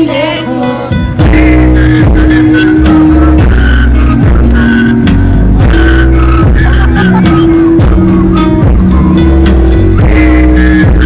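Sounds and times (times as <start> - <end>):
heavy held bassline: 0.0 - 11.0
loud live band music: 0.0 - 11.0
sustained keyboard chords: 0.0 - 11.0
regular drum beat: 5.1 - 10.2.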